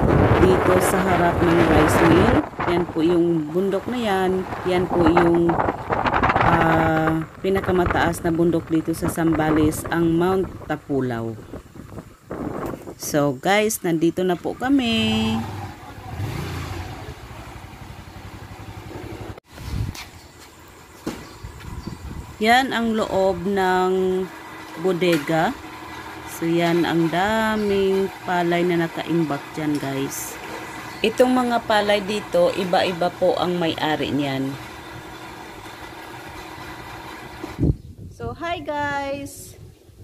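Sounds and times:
machinery humming: 0:00.0 - 0:12.2, 0:20.4 - 0:37.8
small motorcycle engine running: 0:14.5 - 0:19.4, 0:20.8 - 0:37.8.

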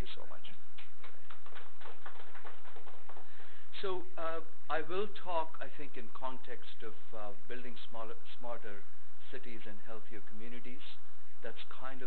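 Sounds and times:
audience applause: 0:01.3 - 0:03.2.

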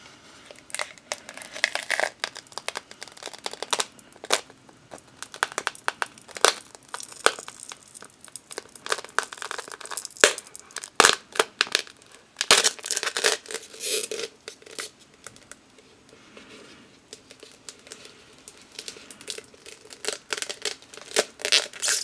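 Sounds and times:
plastic cup crinkling: 0:00.4 - 0:16.1, 0:16.7 - 0:22.0.

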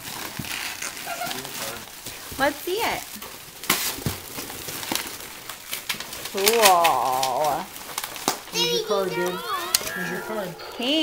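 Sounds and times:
packaging crinkles and clicks: 0:00.0 - 0:10.1.

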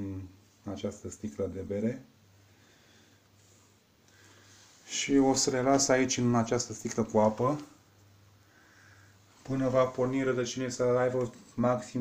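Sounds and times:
faint low hum: 0:00.0 - 0:12.0
soft breath: 0:02.4 - 0:04.9, 0:08.3 - 0:09.4.

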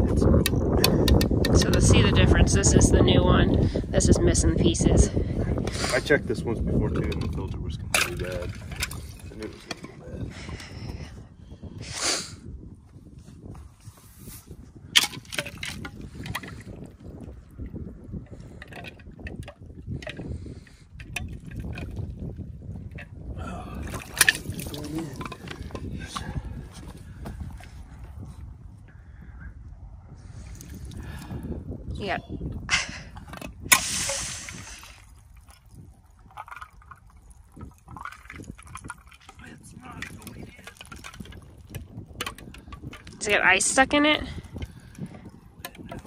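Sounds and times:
sharp knocks and clicks: 0:00.4 - 0:01.8
water sloshing and trickling: 0:05.2 - 0:11.1, 0:14.2 - 0:28.4, 0:33.2 - 0:46.0.

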